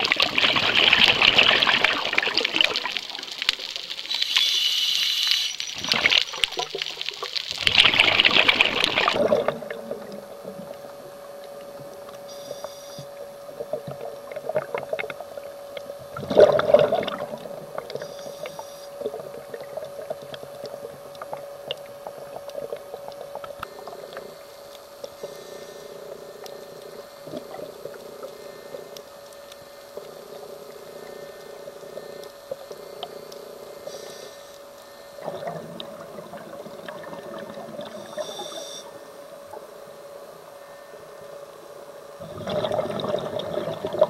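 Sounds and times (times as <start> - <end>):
exhaled bubbles rushing: 0.0 - 3.9, 5.6 - 11.1, 16.1 - 18.0, 19.0 - 24.2, 35.2 - 38.4, 42.2 - 44.0
steady hum: 0.0 - 44.0
diver breathing through regulator: 23.6 - 29.1, 30.2 - 35.2.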